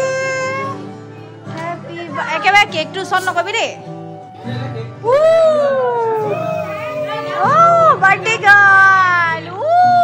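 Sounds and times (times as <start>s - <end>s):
quiet cry: 5.0s - 7.9s
person squealing: 6.2s - 7.7s.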